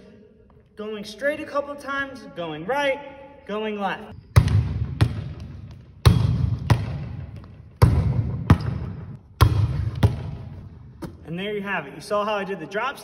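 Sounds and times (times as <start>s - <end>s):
volleyball thumping: 4.3s - 11.2s
volleyball smacking wall: 6.0s - 11.2s.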